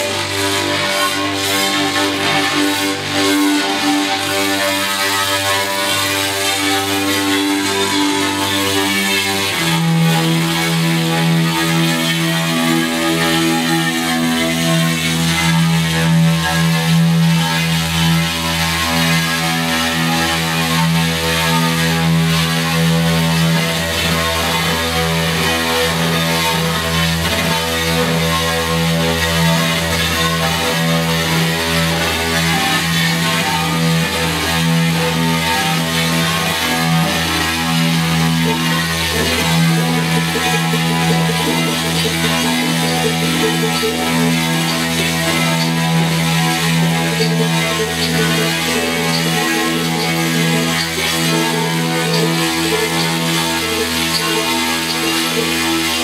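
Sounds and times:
electric guitar: 0.0 - 56.0
electronic backing with low tones: 0.0 - 56.0.

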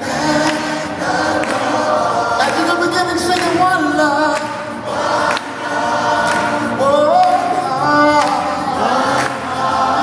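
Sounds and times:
gospel choir singing: 0.0 - 10.0.

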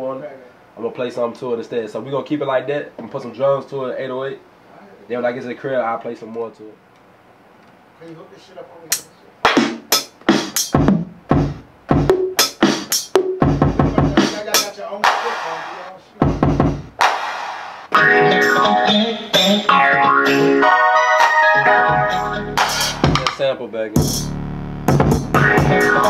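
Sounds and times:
drum hits: 8.9 - 18.1, 22.6 - 23.4, 24.0 - 26.0
bass hits: 21.9 - 23.4, 24.0 - 26.0.

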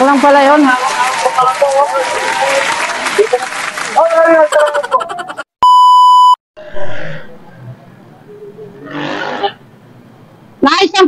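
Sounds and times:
street noise: 0.0 - 5.8, 6.6 - 11.0
electronic bleep tone: 5.6 - 6.9.

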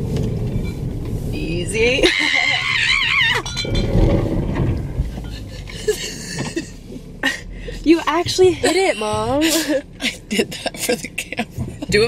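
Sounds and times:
car body rumbling through snow: 0.0 - 12.0.

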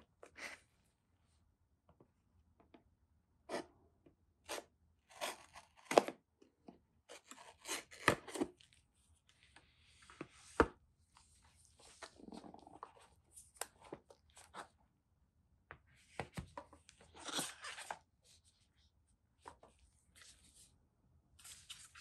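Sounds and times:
paper and card crackling: 21.4 - 22.0.

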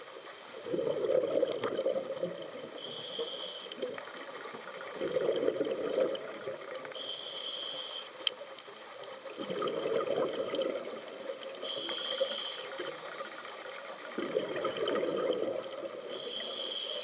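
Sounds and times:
exhaled bubbles gurgling: 0.5 - 7.1, 9.3 - 17.0
regulator inhalation hiss: 2.7 - 3.9, 6.9 - 8.3, 11.6 - 13.2, 16.1 - 17.0.

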